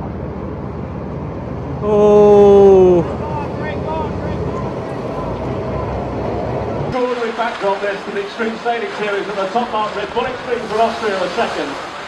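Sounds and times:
low rumble and hiss: 0:00.0 - 0:12.0
distant voices of onlookers: 0:01.8 - 0:08.5.

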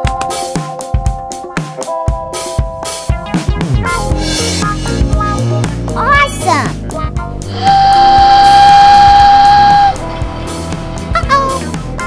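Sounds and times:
background music: 0:00.0 - 0:12.0
toy train whistle: 0:07.5 - 0:10.0.

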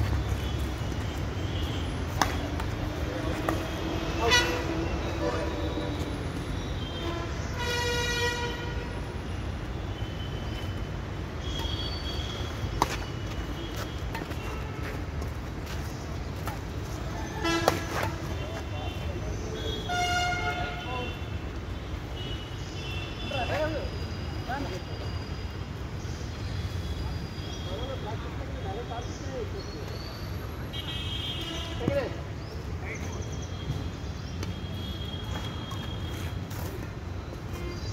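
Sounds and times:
low traffic rumble: 0:00.0 - 0:37.9
rackets hitting shuttlecock: 0:02.1 - 0:02.8, 0:12.7 - 0:13.1, 0:14.0 - 0:14.6, 0:17.6 - 0:18.4
vehicle horn: 0:04.2 - 0:05.4, 0:06.8 - 0:09.0, 0:17.4 - 0:19.0, 0:19.6 - 0:21.3, 0:30.7 - 0:31.8.

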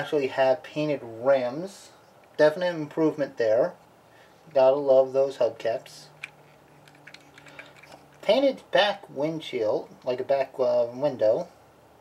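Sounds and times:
low steady hum: 0:00.0 - 0:12.0
plastic toy clicks: 0:06.2 - 0:08.0.

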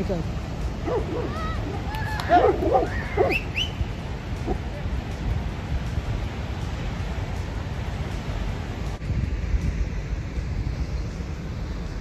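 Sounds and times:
waterfall roaring: 0:00.0 - 0:09.0
wind buffeting microphone: 0:00.0 - 0:12.0.

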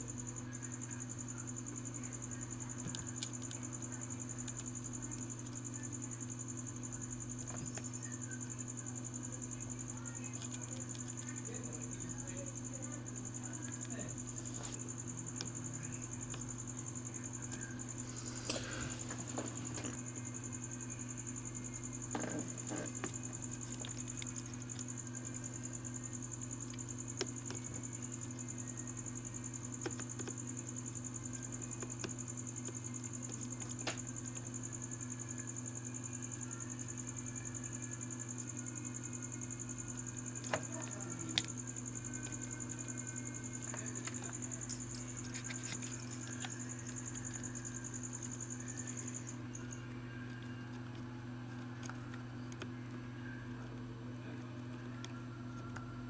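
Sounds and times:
low electrical hum: 0:00.0 - 0:56.0.

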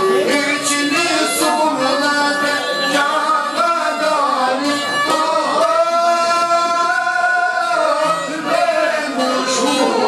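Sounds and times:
man singing a long note: 0:00.0 - 0:10.0
plucked string accompaniment: 0:00.0 - 0:10.0.

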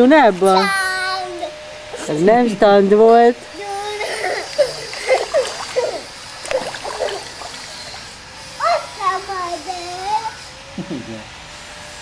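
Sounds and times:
water splashing in a pond: 0:04.5 - 0:08.4.

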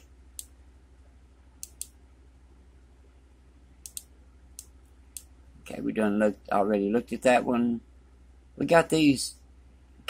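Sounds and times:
faint low hum: 0:00.0 - 0:10.0
computer mouse clicking: 0:01.6 - 0:02.0, 0:03.8 - 0:05.3.

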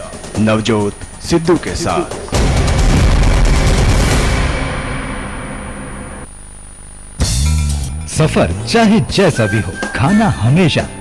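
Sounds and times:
deep impact boom: 0:02.2 - 0:06.2
news sting music: 0:07.2 - 0:11.0.

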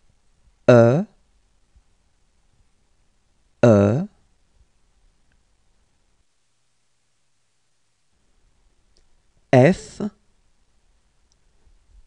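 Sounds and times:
person saying a letter: 0:00.7 - 0:01.1, 0:03.6 - 0:04.2, 0:09.6 - 0:10.2
faint mouth noise: 0:00.7 - 0:01.2, 0:03.6 - 0:04.2.

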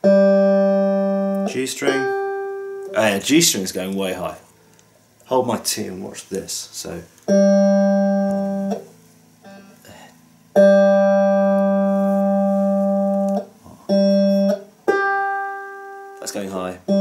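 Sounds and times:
electric guitar string ringing: 0:00.0 - 0:03.2, 0:07.3 - 0:09.8, 0:10.5 - 0:17.0.

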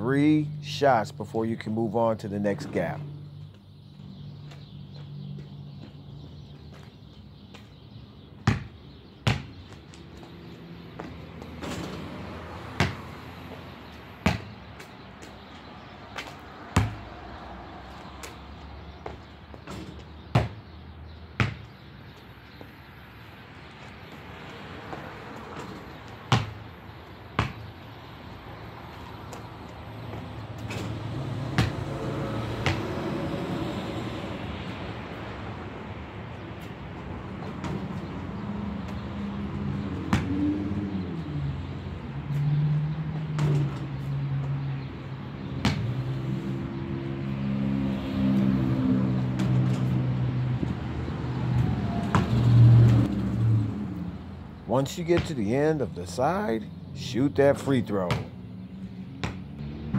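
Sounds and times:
basketball striking hoop: 0:08.4 - 0:09.6, 0:12.8 - 0:13.0, 0:14.2 - 0:14.5, 0:16.8 - 0:17.0, 0:19.7 - 0:20.6, 0:21.4 - 0:21.6, 0:26.3 - 0:26.6, 0:31.6 - 0:31.8, 0:32.6 - 0:32.9, 0:45.6 - 0:45.9, 0:58.1 - 0:58.3
basketball bouncing on concrete: 0:08.4 - 0:15.4, 0:16.1 - 0:17.4, 0:18.0 - 0:22.7, 0:23.8 - 0:27.9, 0:28.9 - 0:33.2, 0:36.3 - 0:41.0, 0:42.3 - 0:47.3, 0:49.2 - 0:50.9, 0:52.0 - 0:53.1, 0:55.1 - 0:55.4, 0:58.0 - 0:58.4, 0:59.2 - 0:59.9.

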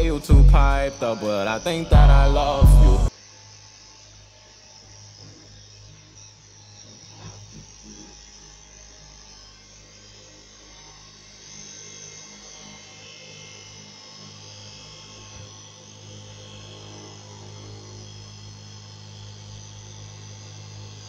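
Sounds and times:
cloth cutting machine motor hum: 0:00.0 - 0:03.1.

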